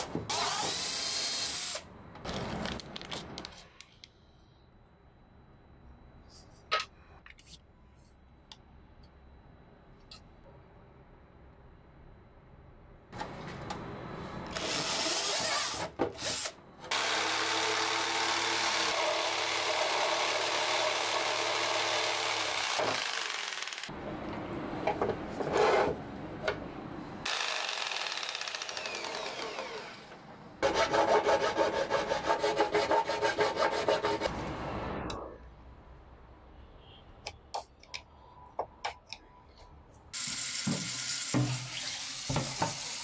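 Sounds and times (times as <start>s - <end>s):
jigsaw cutting through plastic: 14.6s - 23.9s, 27.3s - 30.1s.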